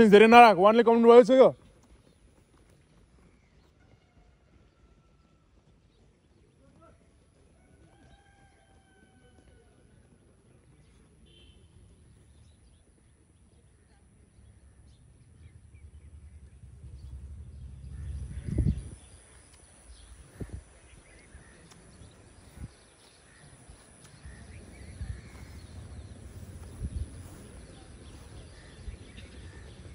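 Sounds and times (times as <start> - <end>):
wind rumble on microphone: 15.2 - 29.9.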